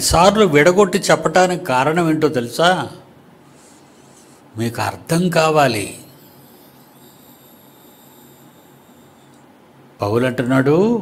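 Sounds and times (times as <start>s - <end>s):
high-pitched whines: 5.6s - 9.7s.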